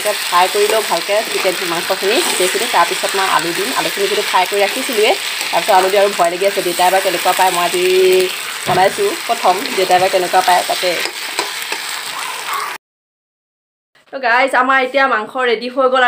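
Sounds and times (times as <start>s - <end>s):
meat sizzling in a pan: 0.0s - 12.8s
spatula scraping a pan: 0.2s - 12.1s.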